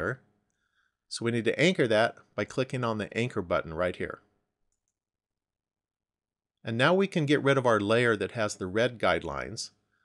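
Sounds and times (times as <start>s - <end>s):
computer mouse click: 4.7s - 5.0s.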